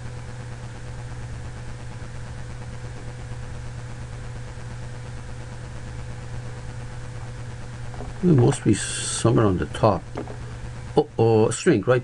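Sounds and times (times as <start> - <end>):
steady low hum: 0.0 - 12.0
background hiss: 7.8 - 12.0.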